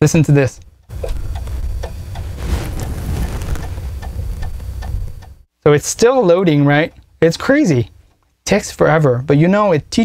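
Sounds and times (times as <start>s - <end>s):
disk drive ticking: 0.6s - 2.3s, 3.9s - 5.5s
floppy disk drive whirring: 0.9s - 2.3s.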